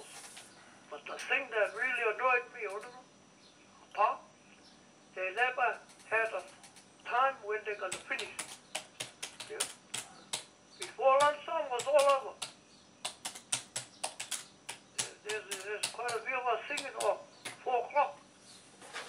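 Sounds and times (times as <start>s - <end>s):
person speaking: 0.9s - 3.1s, 5.2s - 12.5s, 14.0s - 18.2s
keyboard key clicks: 11.8s - 16.2s.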